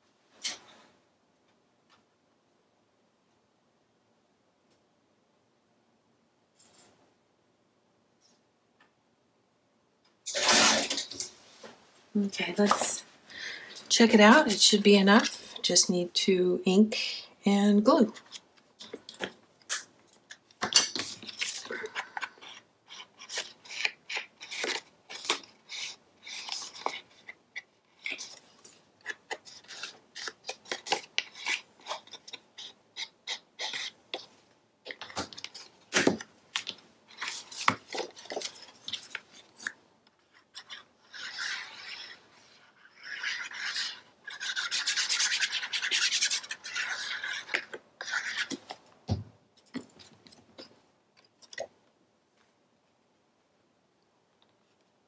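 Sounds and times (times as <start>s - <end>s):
paper being handled: 34.9s - 42.2s
ink pad rubbing paper: 42.8s - 48.5s.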